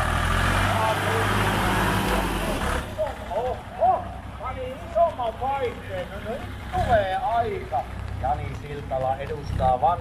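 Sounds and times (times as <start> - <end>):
tractor engine revving: 0.0 - 10.0.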